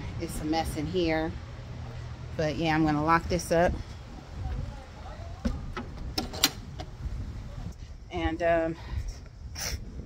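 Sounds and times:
wind rumble on microphone: 0:02.2 - 0:10.0
door latch and lock clicking: 0:05.4 - 0:07.0.

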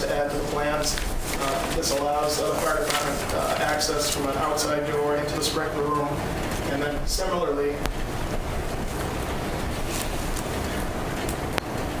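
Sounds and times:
room hiss and hum: 0:00.0 - 0:12.0.

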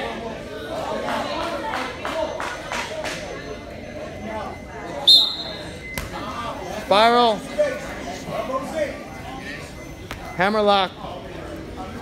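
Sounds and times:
referee's whistle blast: 0:05.0 - 0:05.9.

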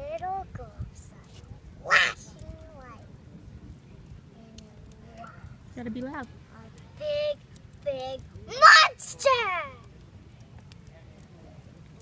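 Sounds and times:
child shrieking: 0:01.9 - 0:02.2.

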